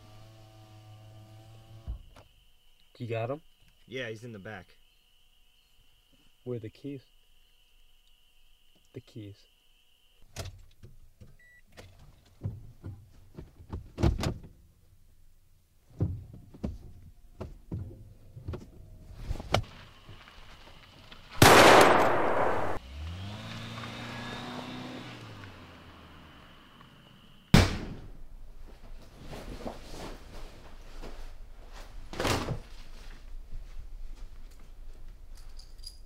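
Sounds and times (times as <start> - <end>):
loud burst: 21.4 - 22.8
car engine starting and revving: 21.9 - 27.5
sharp loud thump: 27.5 - 28.2.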